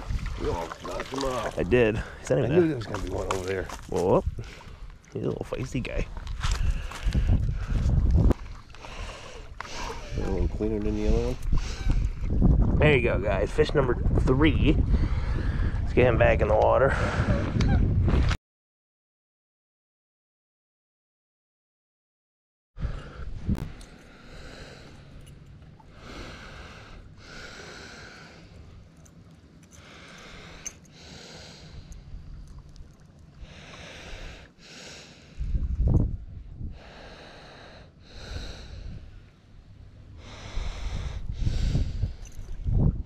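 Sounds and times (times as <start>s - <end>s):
wind buffeting microphone: 0.0s - 18.4s, 35.3s - 37.2s, 38.2s - 39.2s, 40.0s - 43.0s
person breathing: 8.8s - 10.2s, 25.9s - 28.8s, 29.7s - 32.1s, 33.4s - 35.7s, 36.6s - 39.3s, 40.1s - 42.6s.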